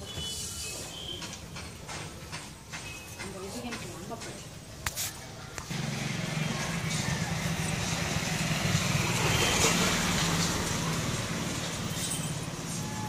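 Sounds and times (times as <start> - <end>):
vehicle engine passing: 5.7 - 12.8.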